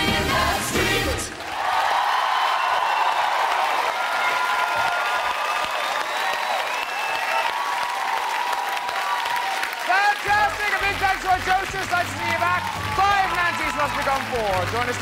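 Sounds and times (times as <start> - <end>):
audience applauding and cheering: 0.0 - 15.0.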